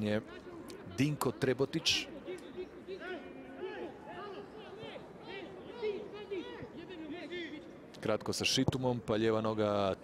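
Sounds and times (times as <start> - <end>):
stadium crowd shouting: 2.0 - 7.7.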